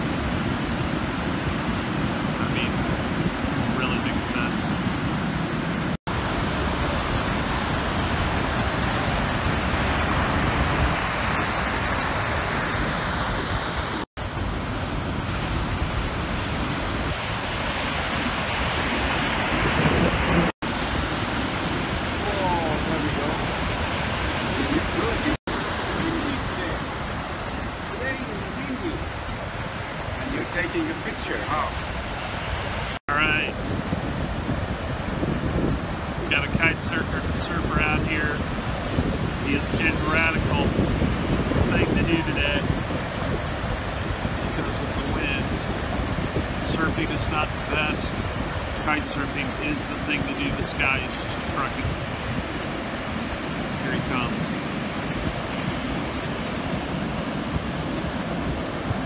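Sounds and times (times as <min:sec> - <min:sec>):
ocean surf breaking: 0:00.0 - 0:59.0
wind buffeting microphone: 0:00.0 - 0:59.0.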